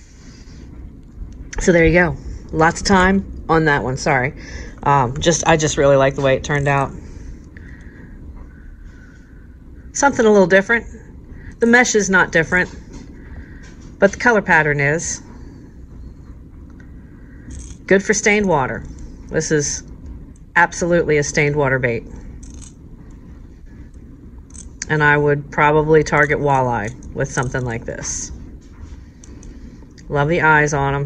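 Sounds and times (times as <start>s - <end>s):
low room hum: 0.0s - 31.0s.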